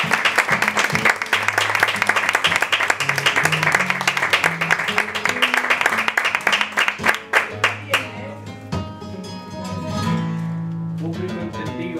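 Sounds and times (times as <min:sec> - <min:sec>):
flamenco guitar strummed chords: 0:00.0 - 0:11.9.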